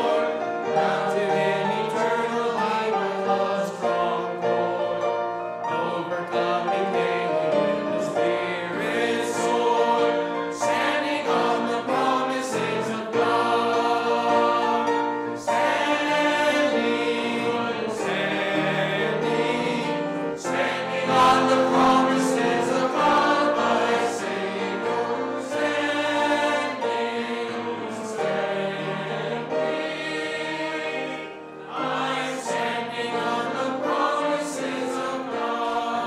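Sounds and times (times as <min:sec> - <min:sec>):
congregation singing a hymn: 0:00.0 - 0:36.0.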